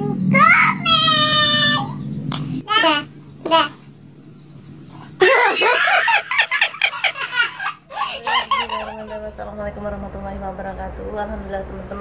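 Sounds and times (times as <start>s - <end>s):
loud laughter: 5.2s - 9.2s.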